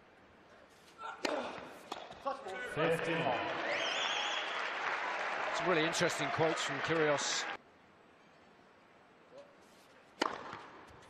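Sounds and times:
tennis racket hits: 0:10.2 - 0:11.0.

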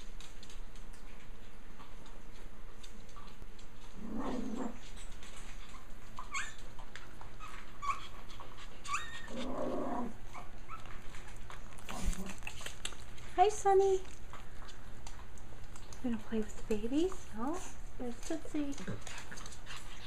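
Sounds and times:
dog growls: 0:03.9 - 0:04.9, 0:09.2 - 0:10.3
dog high squeaks: 0:06.2 - 0:06.6, 0:08.8 - 0:09.4.

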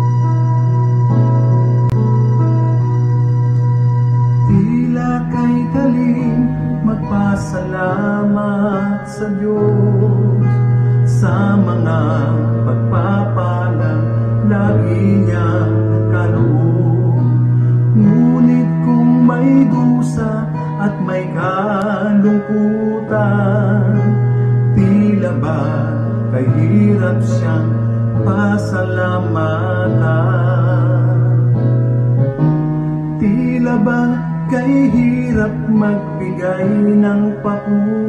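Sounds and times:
low accompaniment note: 0:00.0 - 0:08.6
instrumental backing music: 0:00.0 - 0:38.0
man singing into a microphone: 0:04.3 - 0:32.0, 0:33.1 - 0:38.0.

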